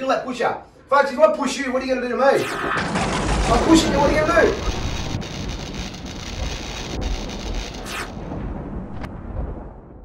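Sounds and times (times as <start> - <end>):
thunder and rain sound effect: 2.8 - 10.0.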